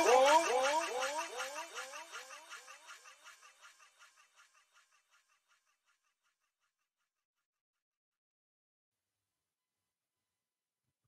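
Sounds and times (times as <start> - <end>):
echoing rising pitch glide: 0.0 - 3.1.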